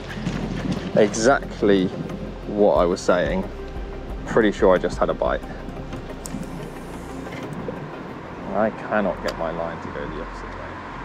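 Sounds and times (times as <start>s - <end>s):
wind buffeting microphone: 0.0s - 3.4s.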